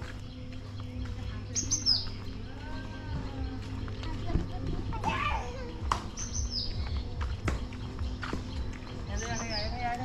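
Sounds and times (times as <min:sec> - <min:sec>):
child calling out: 0:05.0 - 0:05.9.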